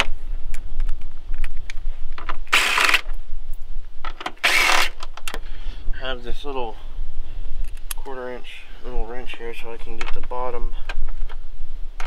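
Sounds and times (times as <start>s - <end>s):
cordless driver spinning: 2.5s - 3.1s, 4.4s - 5.0s.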